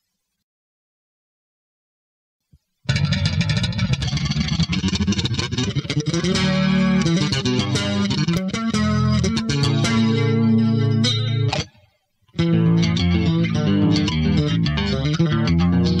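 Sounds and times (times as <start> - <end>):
electric bass guitar: 2.9 - 16.0.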